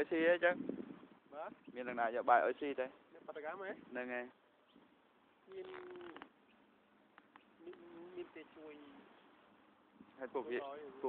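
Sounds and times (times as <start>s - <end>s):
person drawing out a word: 5.5s - 6.3s.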